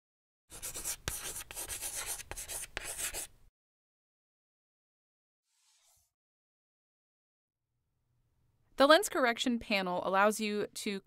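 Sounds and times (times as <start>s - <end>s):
chalk tapping: 0.5s - 3.3s
chalk scratching on chalkboard: 0.5s - 3.4s.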